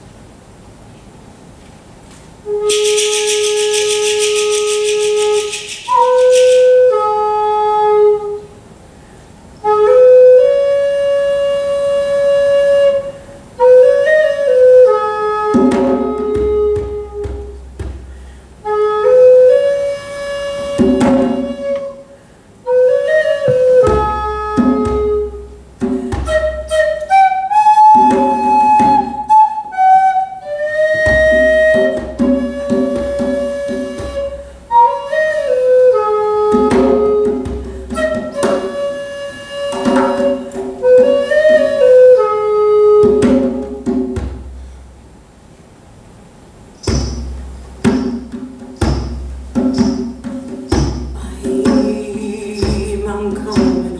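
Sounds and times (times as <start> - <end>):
wooden flute melody: 2.4 - 8.7, 9.6 - 44.5
djembe drumming: 2.5 - 7.0, 14.8 - 22.0, 22.8 - 29.7, 30.8 - 44.7, 46.8 - 53.9.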